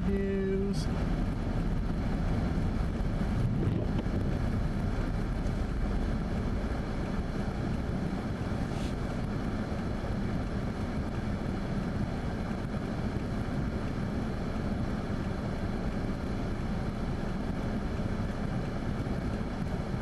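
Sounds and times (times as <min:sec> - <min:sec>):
car interior road rumble: 0:00.0 - 0:20.0.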